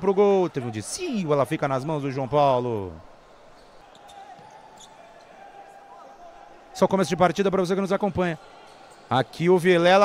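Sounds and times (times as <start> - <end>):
low hall background: 0.0 - 10.0.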